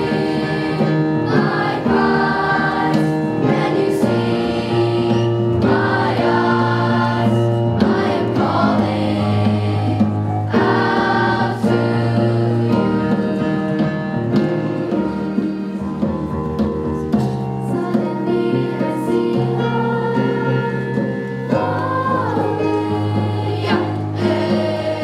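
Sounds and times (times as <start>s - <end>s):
choir singing in harmony: 0.0s - 13.8s, 17.6s - 25.0s.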